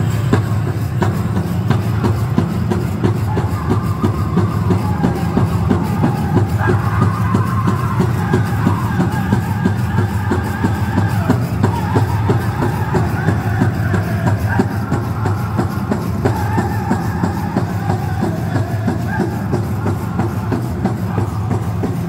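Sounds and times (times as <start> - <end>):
hand drum steady beat: 0.0 - 22.0
high-pitched group singing: 1.1 - 22.0.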